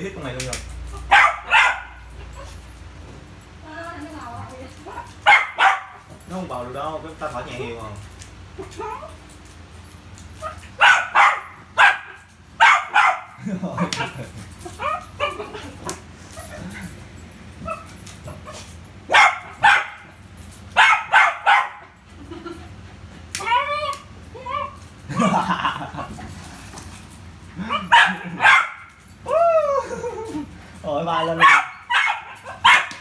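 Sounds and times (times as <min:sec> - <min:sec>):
dog yipping: 0:00.9 - 0:02.7, 0:04.9 - 0:06.0, 0:08.6 - 0:09.2, 0:10.4 - 0:13.3, 0:14.7 - 0:15.6, 0:17.6 - 0:20.1, 0:20.8 - 0:21.9, 0:23.4 - 0:24.8, 0:27.6 - 0:29.4, 0:31.4 - 0:33.0
dog barking: 0:01.0 - 0:02.6, 0:04.9 - 0:06.1, 0:10.4 - 0:13.4, 0:17.6 - 0:20.1, 0:20.8 - 0:22.0, 0:27.6 - 0:28.9, 0:31.4 - 0:33.0.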